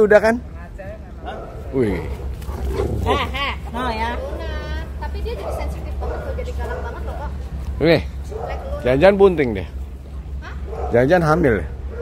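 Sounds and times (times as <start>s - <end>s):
dogs vocalizing: 1.2s - 7.3s.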